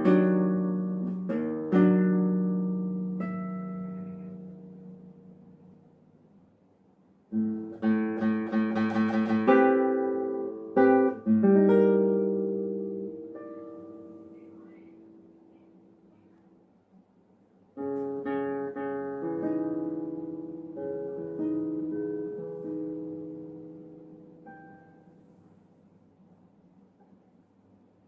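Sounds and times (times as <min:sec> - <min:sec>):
nylon-string guitar playing: 0:00.0 - 0:06.1, 0:07.3 - 0:16.0, 0:17.8 - 0:25.4.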